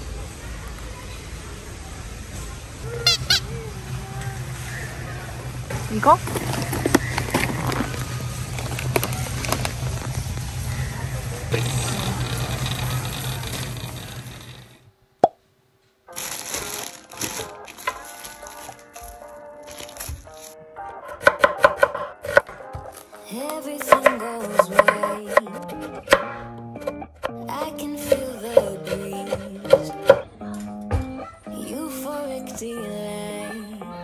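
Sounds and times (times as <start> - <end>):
store background noise: 0.0 - 34.0
plastic bags rustling: 5.8 - 10.6, 15.8 - 20.6
background music: 16.1 - 34.0
knife chopping on wooden board: 21.0 - 22.6, 23.8 - 27.0, 28.1 - 30.2.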